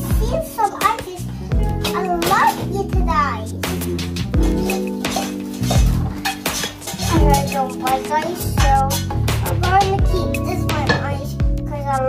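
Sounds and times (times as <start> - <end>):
background music: 0.0 - 12.0
kitchen items clinking on countertop: 3.9 - 10.0.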